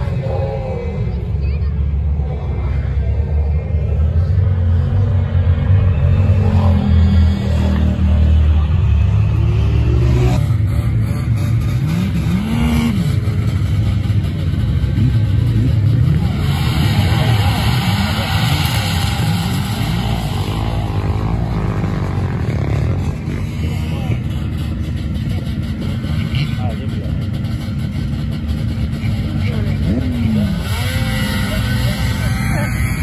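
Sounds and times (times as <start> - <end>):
off-road engines revving: 0.0 - 33.0.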